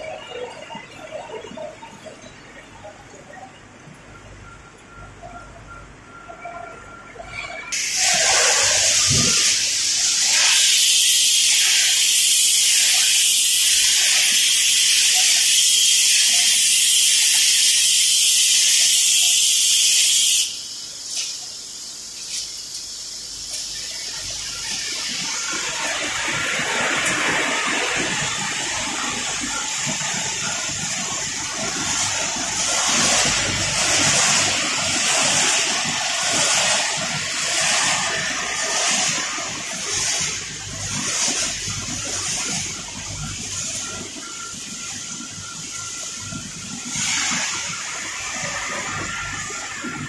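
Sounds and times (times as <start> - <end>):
machinery rushing noise: 7.5 - 50.0.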